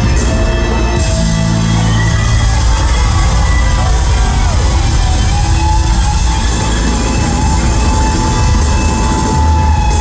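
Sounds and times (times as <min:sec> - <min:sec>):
heavy steady bass: 0:00.0 - 0:10.0.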